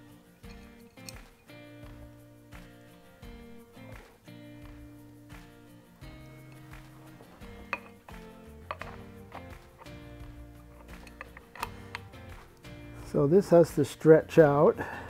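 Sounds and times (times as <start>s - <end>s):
background music with held notes: 0.0s - 15.0s.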